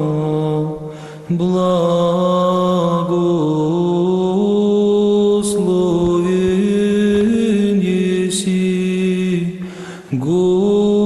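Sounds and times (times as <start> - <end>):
church choir chanting: 1.3 - 11.0.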